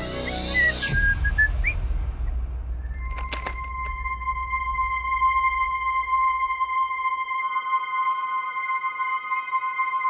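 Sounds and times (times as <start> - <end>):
man whistling: 0.2 - 1.8.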